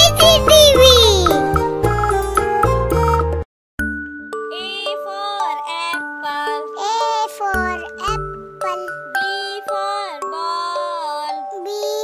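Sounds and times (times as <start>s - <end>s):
child-like voice singing: 0.0s - 1.4s, 4.5s - 12.0s
bass line: 0.0s - 3.4s
jingly keyboard tune: 0.0s - 10.1s.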